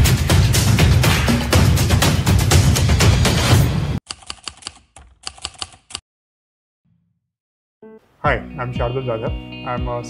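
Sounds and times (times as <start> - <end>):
background music: 0.0 - 4.0, 7.8 - 10.0
keyboard typing clicks: 4.1 - 6.0.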